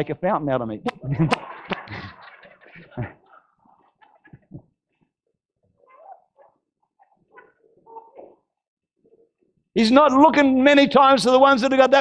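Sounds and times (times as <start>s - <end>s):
faint scattered laughter: 0.9s - 4.5s.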